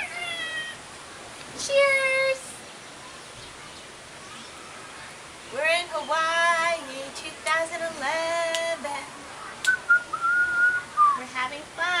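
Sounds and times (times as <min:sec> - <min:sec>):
sing-song voice: 0:05.5 - 0:12.0
person whistling high note: 0:09.7 - 0:11.2.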